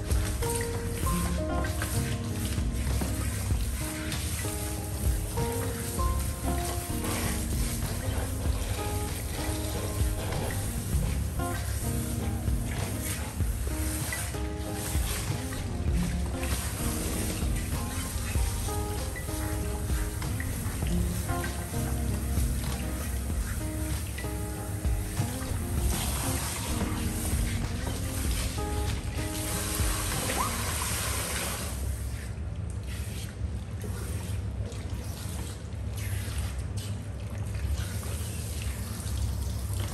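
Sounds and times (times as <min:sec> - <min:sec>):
background music of held notes: 0:00.0 - 0:31.2
hose water spraying onto hair: 0:00.0 - 0:39.9.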